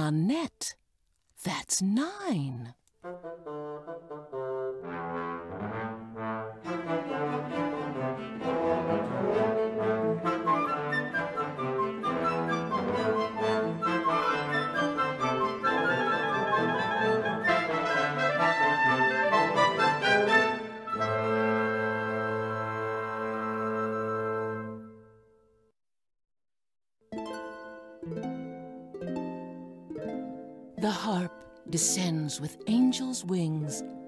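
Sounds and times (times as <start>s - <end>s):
small ensemble playing classical music: 3.6s - 24.9s.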